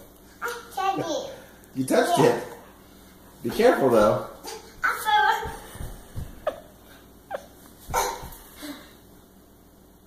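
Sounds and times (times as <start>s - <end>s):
toddler yelping: 4.5s - 5.6s, 7.9s - 8.4s.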